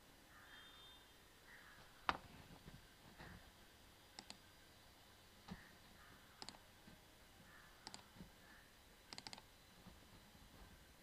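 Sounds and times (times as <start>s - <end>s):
computer mouse clicks: 4.2s - 4.4s, 6.4s - 6.6s, 7.8s - 8.2s, 9.1s - 9.5s.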